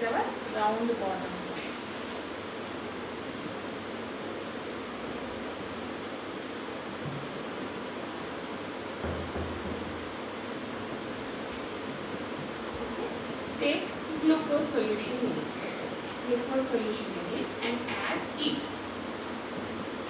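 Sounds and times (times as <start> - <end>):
room noise hiss: 0.0 - 20.0.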